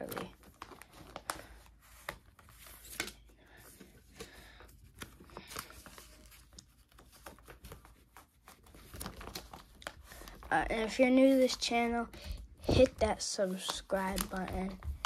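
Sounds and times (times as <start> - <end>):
plastic binder pages crinkling: 0.0 - 15.0.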